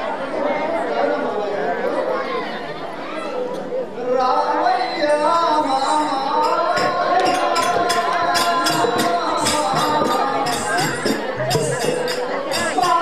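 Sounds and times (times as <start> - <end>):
held sung notes with music: 3.4 - 13.0.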